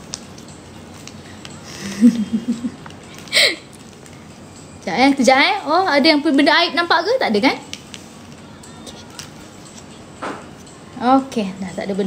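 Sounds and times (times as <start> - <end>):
woman chuckling: 1.7 - 3.7.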